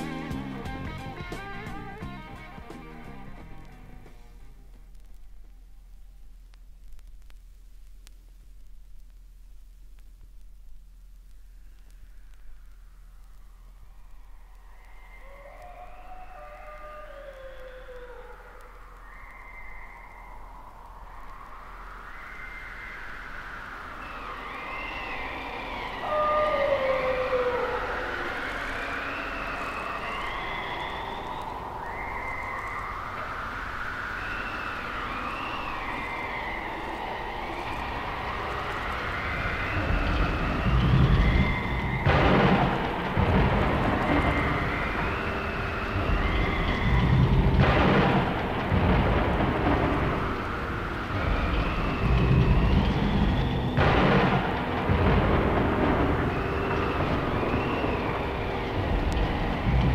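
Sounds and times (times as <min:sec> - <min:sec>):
deep thunder-like rumble: 0:18.6 - 0:59.9.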